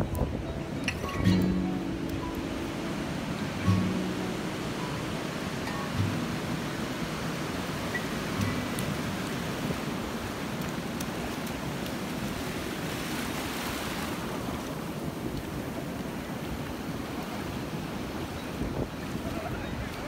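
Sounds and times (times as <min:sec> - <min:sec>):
small ocean waves breaking: 0:00.6 - 0:20.0.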